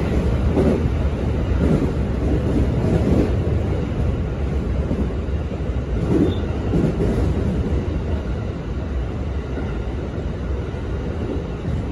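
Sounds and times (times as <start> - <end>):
electric train rumbling: 0.0 - 11.9.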